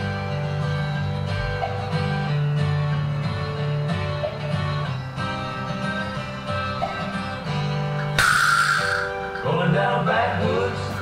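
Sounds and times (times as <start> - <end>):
guitar-led backing music: 0.0 - 11.0.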